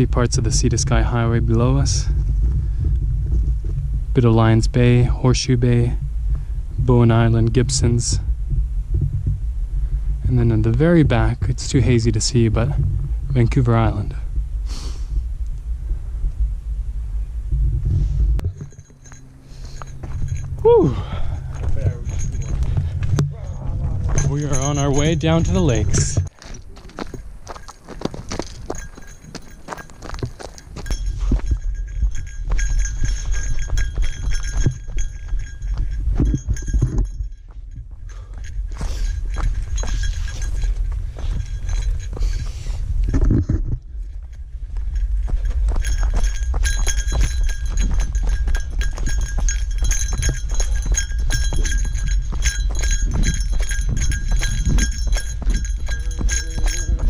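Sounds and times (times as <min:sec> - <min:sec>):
low rumble: 0:00.0 - 0:57.0
small bell jingling: 0:18.4 - 0:42.8, 0:44.0 - 0:57.0
footsteps crunching on gravel: 0:18.5 - 0:42.9, 0:44.0 - 0:57.0.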